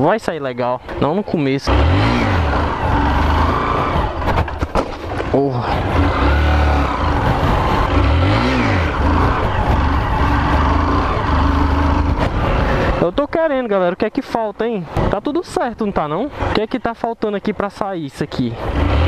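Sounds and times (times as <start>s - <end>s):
motorcycle engine revving: 1.6s - 13.0s, 18.6s - 19.0s.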